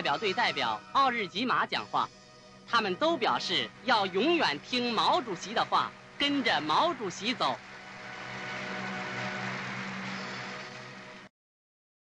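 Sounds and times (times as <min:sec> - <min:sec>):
audience applauding: 0:04.9 - 0:11.3.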